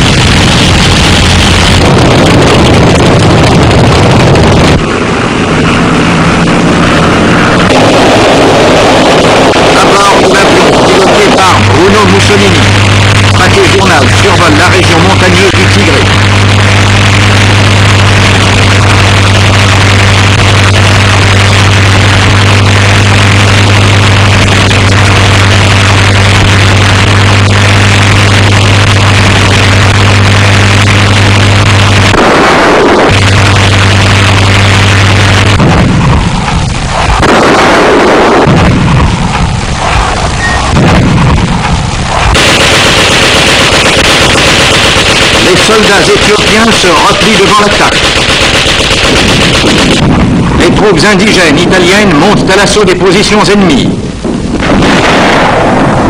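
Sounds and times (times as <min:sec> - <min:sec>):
propeller aircraft engines droning: 0:00.0 - 0:55.0
bombs bursting booms: 0:00.0 - 0:56.0.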